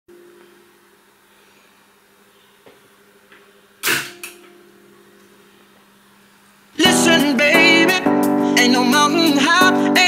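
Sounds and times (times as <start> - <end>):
faint steady hum: 0.1 - 10.0
mechanical clunk: 3.8 - 4.7.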